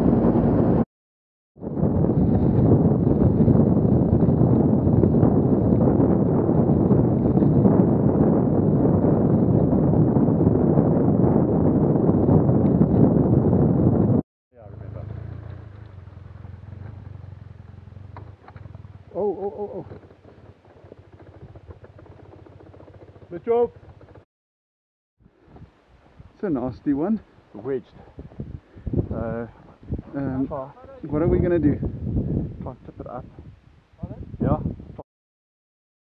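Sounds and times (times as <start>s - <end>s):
wind buffeting microphone: 0.0s - 0.8s, 1.6s - 14.2s, 25.2s - 35.0s
low hum: 1.6s - 20.3s
motorcycle engine running: 1.8s - 24.2s.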